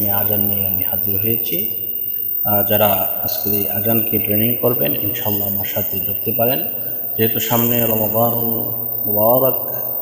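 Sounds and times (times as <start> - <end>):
man talking: 0.0 - 1.7, 2.5 - 9.9.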